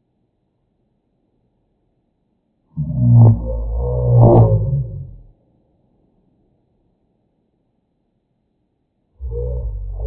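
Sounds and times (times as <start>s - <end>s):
slowed down deep voice: 2.8s - 5.3s, 9.2s - 10.0s.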